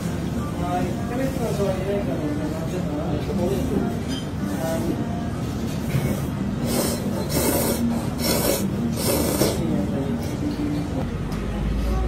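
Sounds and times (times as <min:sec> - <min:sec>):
person slurping noodles: 0:06.0 - 0:09.8.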